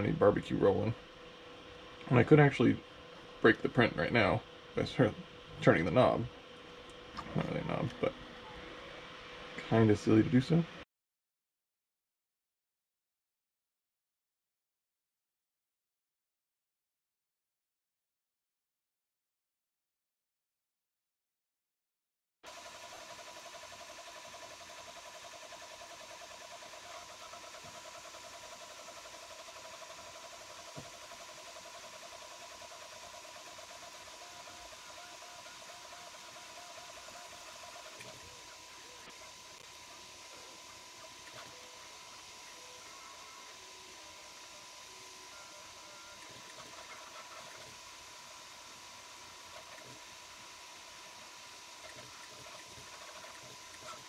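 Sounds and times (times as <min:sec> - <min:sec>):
steady high hum: 0:00.0 - 0:10.8, 0:22.5 - 0:54.0
stepper motors whining: 0:22.5 - 0:54.0.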